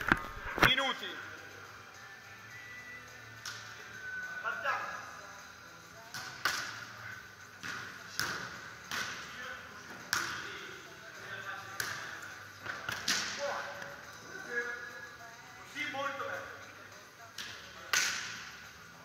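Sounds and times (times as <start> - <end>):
volleyball hits echoing: 7.6 - 9.4, 10.0 - 10.4.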